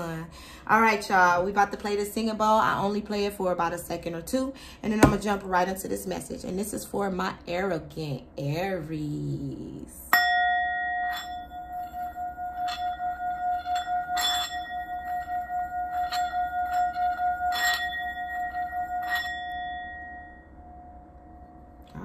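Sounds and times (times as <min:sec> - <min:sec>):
singing bowl ringing: 0:10.1 - 0:22.0.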